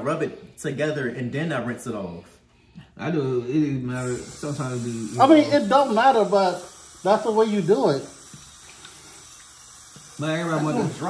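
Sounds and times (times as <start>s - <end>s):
faucet water splashing into sink: 4.0s - 11.0s.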